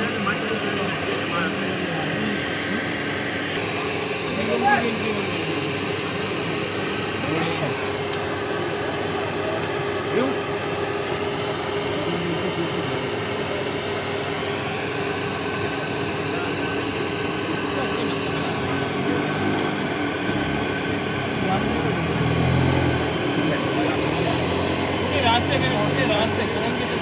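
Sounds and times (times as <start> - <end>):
steady mechanical hum: 0.0 - 27.0
indistinct voices: 15.6 - 27.0.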